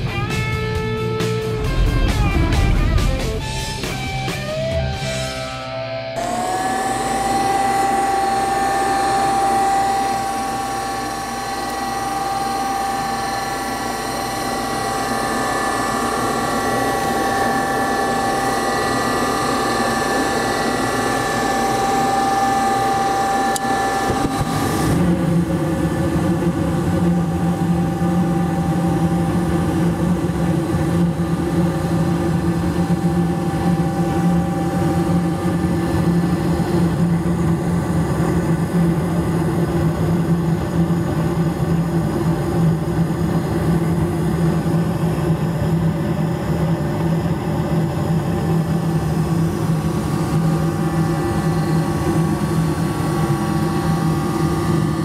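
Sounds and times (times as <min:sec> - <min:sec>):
furnace fan: 0:00.0 - 0:55.0
furnace motor whine: 0:00.0 - 0:55.0
gas burners roaring: 0:00.0 - 0:55.0.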